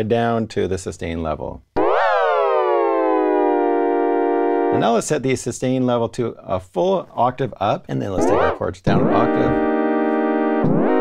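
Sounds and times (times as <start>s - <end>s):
synthesizer chord with pitch glide: 1.8s - 4.8s, 8.2s - 11.0s.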